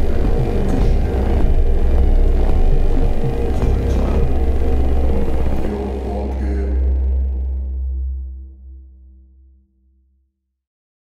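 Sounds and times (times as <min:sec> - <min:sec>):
theme music with heavy bass: 0:00.0 - 0:08.8.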